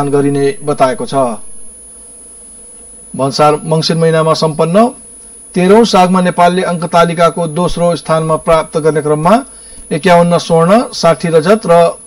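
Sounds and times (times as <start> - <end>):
man speaking: 0.0 - 1.7, 3.2 - 5.0, 5.6 - 12.0
high-pitched whine: 0.0 - 12.0
steady background buzz: 0.0 - 12.0.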